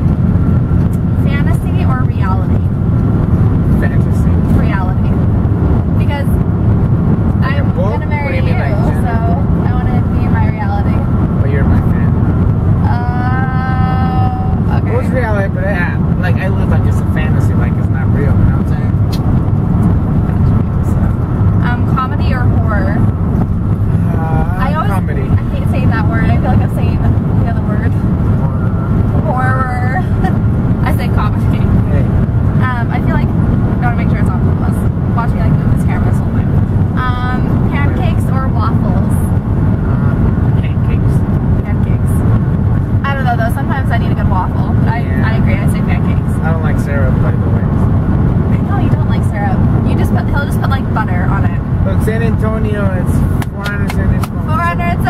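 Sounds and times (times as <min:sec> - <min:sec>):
car road and engine rumble: 0:00.0 - 0:55.0
people talking: 0:01.2 - 0:02.7, 0:03.7 - 0:05.3, 0:06.0 - 0:06.4, 0:07.4 - 0:12.1, 0:12.8 - 0:19.0, 0:20.3 - 0:23.1, 0:23.9 - 0:42.3, 0:43.0 - 0:47.8, 0:48.5 - 0:55.0.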